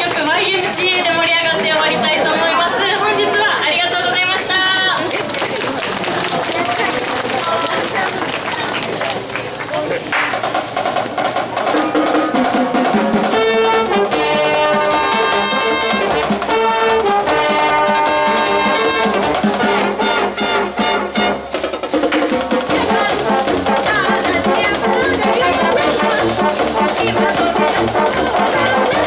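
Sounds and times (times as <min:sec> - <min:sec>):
crowd voices: 0:00.0 - 0:29.0
drums: 0:00.0 - 0:29.0
brass band playing: 0:05.8 - 0:29.0.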